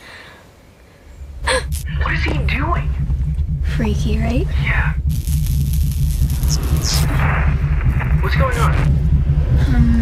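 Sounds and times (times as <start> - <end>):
deep pulsing bass drone: 1.0 - 10.0
static hiss: 4.9 - 8.8.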